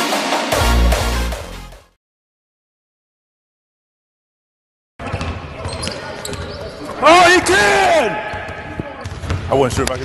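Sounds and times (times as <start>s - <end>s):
basketball bouncing on court: 5.0s - 6.6s, 8.2s - 10.0s.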